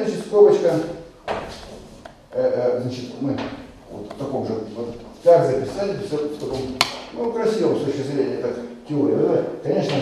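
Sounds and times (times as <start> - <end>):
man lecturing: 0.0 - 1.1, 2.3 - 10.0.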